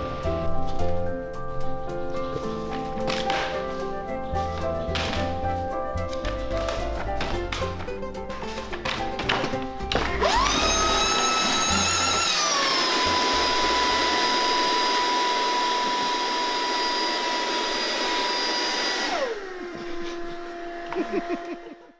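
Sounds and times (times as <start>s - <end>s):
electric blower motor whining: 9.9s - 21.9s.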